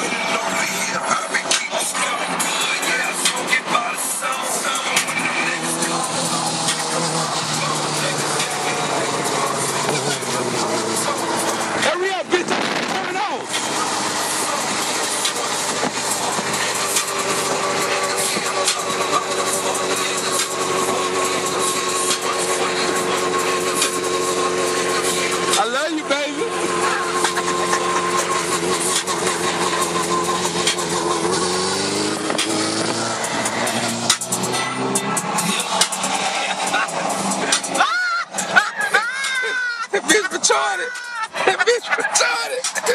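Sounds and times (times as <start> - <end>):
vehicle engine running: 0.0 - 42.9.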